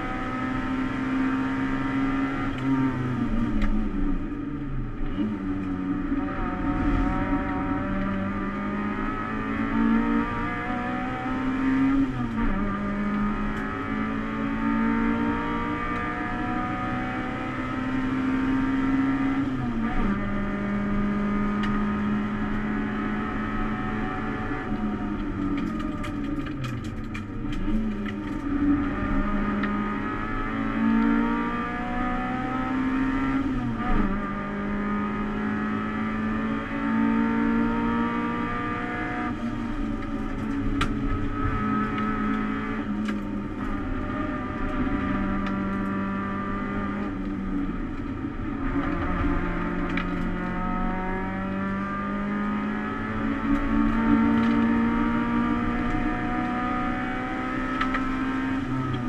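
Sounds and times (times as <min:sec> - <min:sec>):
car engine under hard acceleration: 0:00.0 - 0:59.0.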